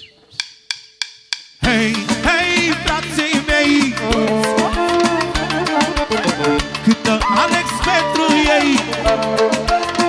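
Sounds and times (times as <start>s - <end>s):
wood block clicks: 0.3s - 1.6s
band playing with bass: 1.6s - 10.0s.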